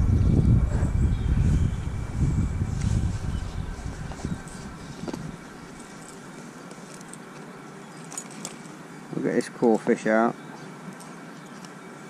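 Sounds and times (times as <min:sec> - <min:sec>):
wind buffeting microphone: 0:00.0 - 0:05.9.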